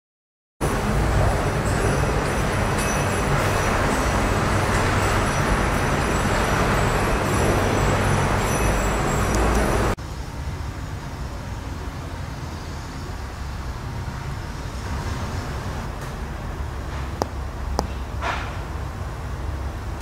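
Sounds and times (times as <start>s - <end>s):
steady rumbling ambient noise: 0.6s - 20.0s.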